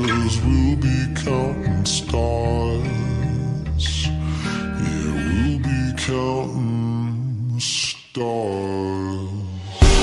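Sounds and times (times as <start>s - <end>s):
man singing long held notes: 0.0s - 10.0s
slowed pop song: 0.0s - 10.0s.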